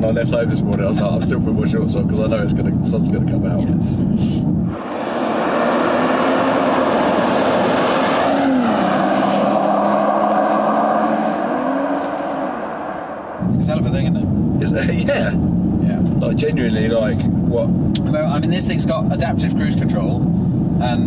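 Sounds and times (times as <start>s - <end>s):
people talking: 0.0s - 4.4s, 13.4s - 20.2s, 20.8s - 21.0s
car engine driving by: 4.6s - 16.3s.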